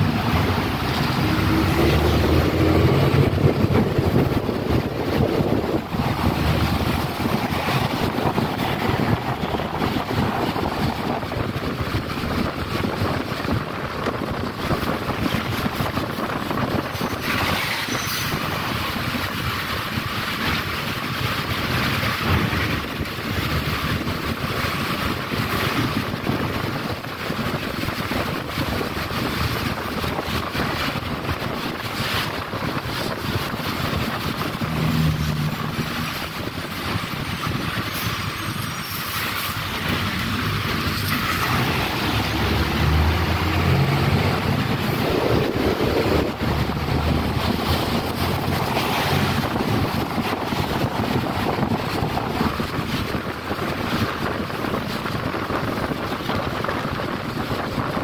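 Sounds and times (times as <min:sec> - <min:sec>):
bus engine drone: 0:00.0 - 0:58.0
tyres hissing on wet road: 0:00.0 - 0:58.0.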